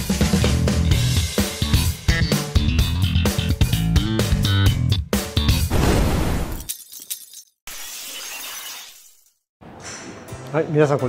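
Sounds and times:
intro music with bass guitar: 0.0 - 5.7
glass shattering effect: 5.7 - 9.4.

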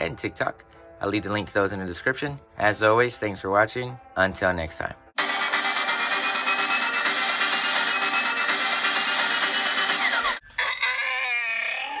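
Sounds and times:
electronic music: 5.2 - 10.4.

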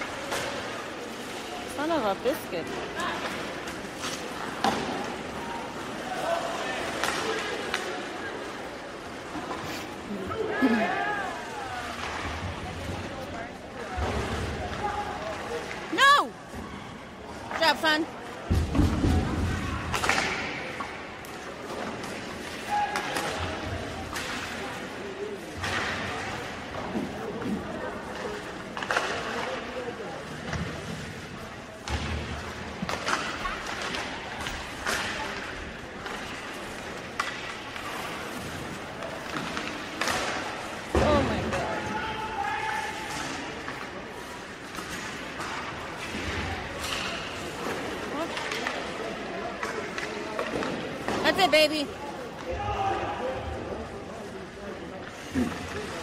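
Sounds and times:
hockey sticks and puck clacking: 0.0 - 10.1, 17.4 - 53.6.

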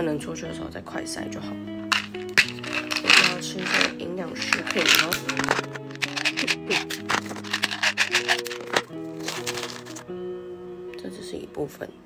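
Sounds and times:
background music with held notes: 0.0 - 12.0
capsules rattling in plastic bottle: 1.9 - 10.0.

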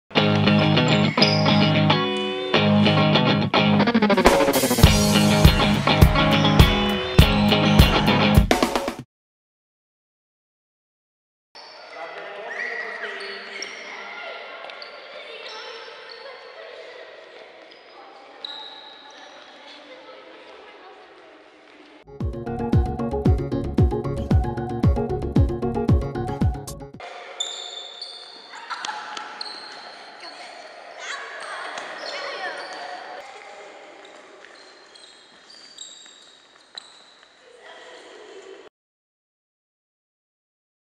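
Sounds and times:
sneakers squeaking on wooden floor: 0.2 - 2.8, 11.6 - 19.9, 27.4 - 37.5
children's voices echoing: 11.8 - 18.4, 19.0 - 22.0, 28.4 - 34.9, 37.4 - 38.7.

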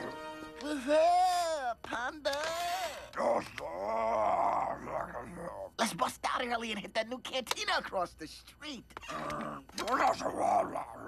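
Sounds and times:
gruff alien voice gibberish: 9.1 - 11.0.

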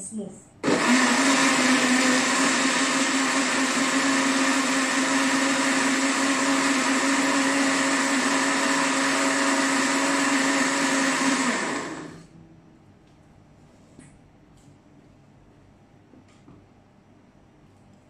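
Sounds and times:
blender running: 0.6 - 12.3.

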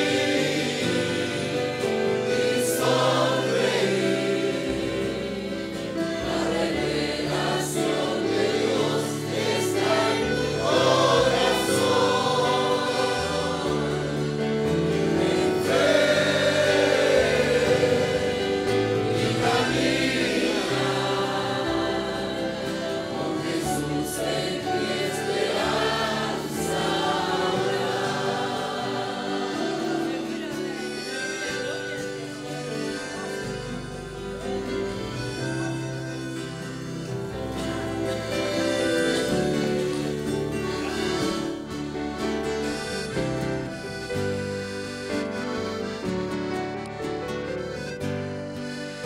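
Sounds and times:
congregation singing a hymn: 0.0 - 49.0
instrumental accompaniment low notes: 0.0 - 49.0.

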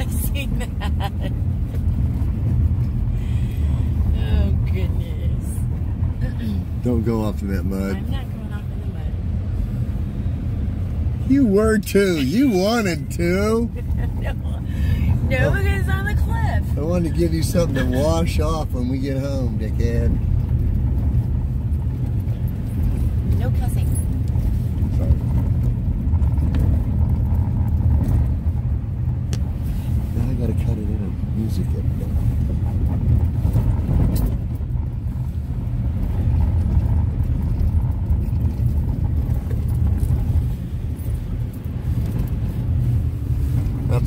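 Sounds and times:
engine and tyres rumbling on gravel: 0.0 - 44.0.

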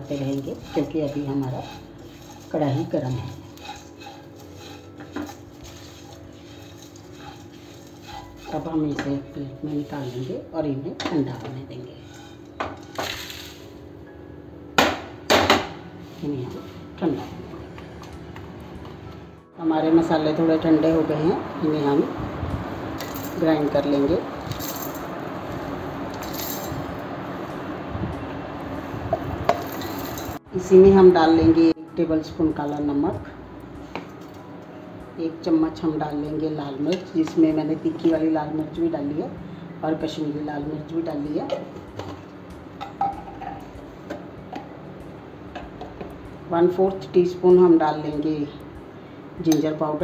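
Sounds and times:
spatula scraping spices in a pan: 0.0 - 10.4, 11.9 - 13.6
seeds rattling on metal: 12.1 - 13.6, 23.0 - 25.2, 26.1 - 26.9, 29.5 - 30.4.

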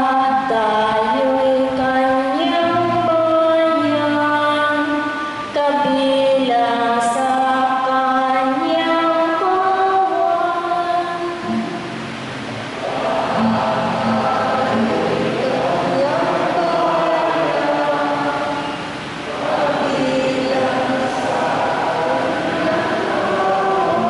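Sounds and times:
choir singing slow chant: 0.0 - 24.0.

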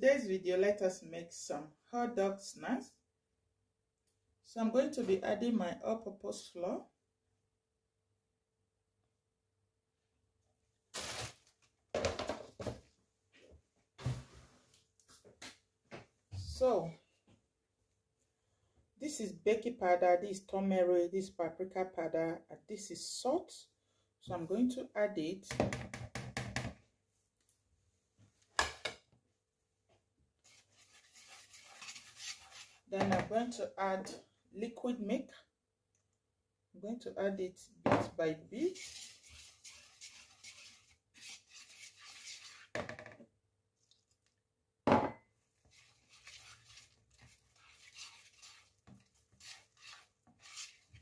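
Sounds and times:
whisk stirring flour in a bowl: 30.4 - 33.0, 38.6 - 42.7, 45.6 - 51.0.

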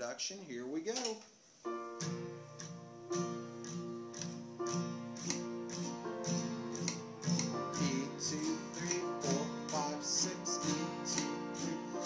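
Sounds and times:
acoustic guitar strumming: 1.7 - 12.0.

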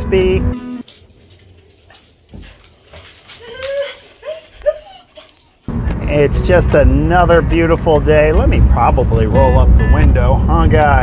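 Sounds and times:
dog whining: 1.4 - 5.7.

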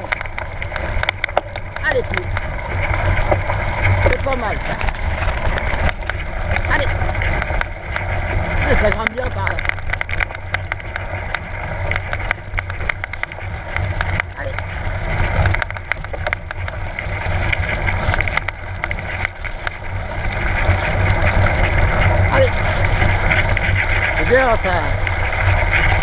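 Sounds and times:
bike clicks and rattles: 0.0 - 26.0
bike rolling over dirt track: 0.0 - 26.0.

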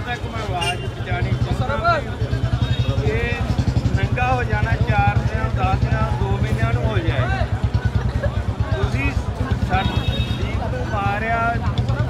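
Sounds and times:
large crowd voices: 0.0 - 12.0.

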